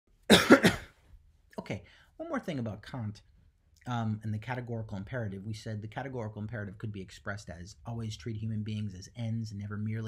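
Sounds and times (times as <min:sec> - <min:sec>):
man coughing: 0:00.3 - 0:01.0.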